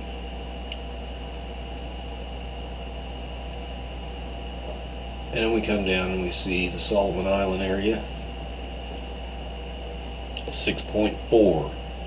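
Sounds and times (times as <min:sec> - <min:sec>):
background hum and hiss: 0:00.0 - 0:12.0
faint high whine: 0:00.0 - 0:12.0.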